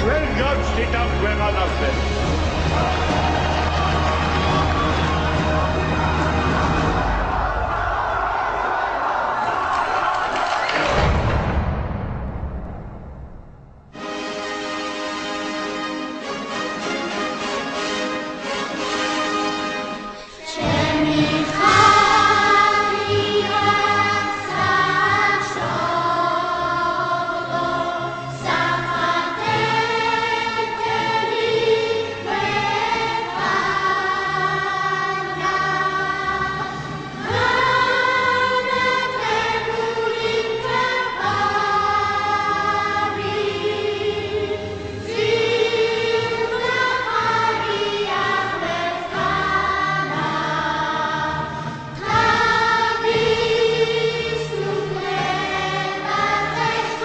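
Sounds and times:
choir singing held chords: 0.0 - 11.9, 14.0 - 57.0.

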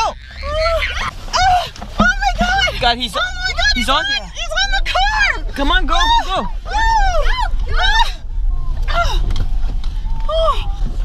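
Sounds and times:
people crying out in fright: 0.0 - 1.7
car hum: 0.0 - 11.0.

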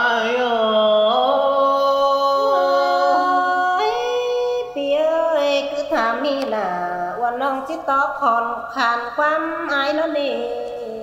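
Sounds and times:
person singing folk song: 0.0 - 7.7.

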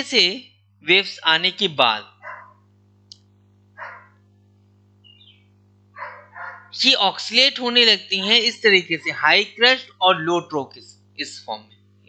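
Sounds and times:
man speaking: 0.0 - 2.0, 6.8 - 11.6
low electrical hum: 0.0 - 12.0.

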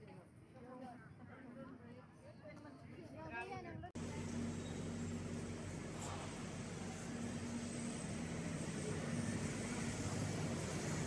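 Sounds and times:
city street rumble and hum: 3.7 - 11.0.

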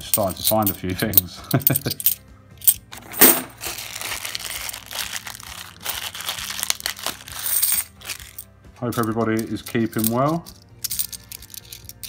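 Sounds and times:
coins clinking: 0.0 - 12.0
plastic bag crinkling: 3.5 - 8.4.

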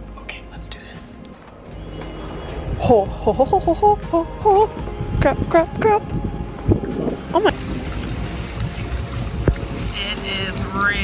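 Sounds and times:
wind rumbling on microphone: 1.4 - 11.0
hot tub water churning: 6.6 - 11.0.

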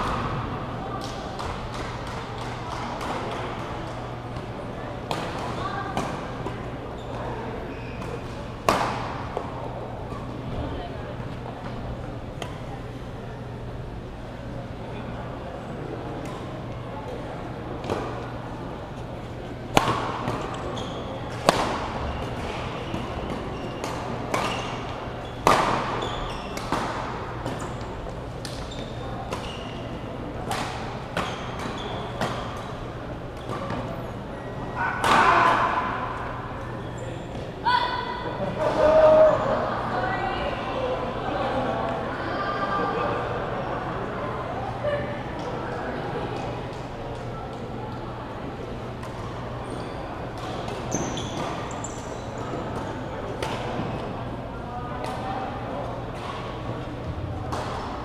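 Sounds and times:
murmur of voices: 0.0 - 58.0.

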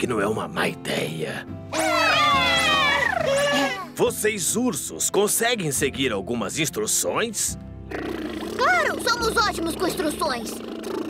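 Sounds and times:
cartoon cat-like cry: 1.7 - 3.9.

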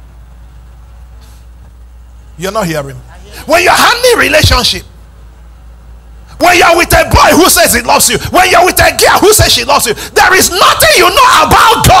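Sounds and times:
sound system hum: 0.0 - 12.0
brief soft hiss: 1.2 - 1.7.

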